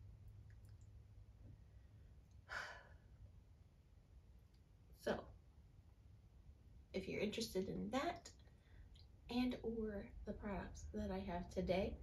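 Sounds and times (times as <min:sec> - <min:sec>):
faint low room hum: 0:00.0 - 0:12.0
woman sighing exhale: 0:02.5 - 0:03.1.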